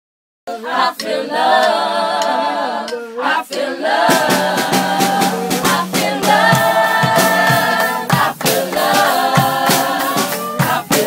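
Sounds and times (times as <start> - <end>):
voices singing a cappella: 0.5 - 11.0.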